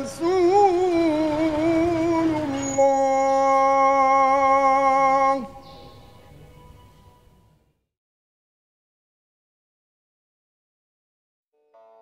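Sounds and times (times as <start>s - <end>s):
woman singing: 0.0s - 5.5s.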